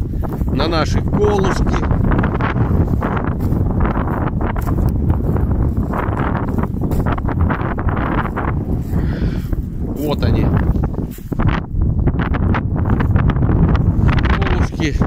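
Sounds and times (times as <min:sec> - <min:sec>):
gusty wind buffeting microphone: 0:00.0 - 0:15.0.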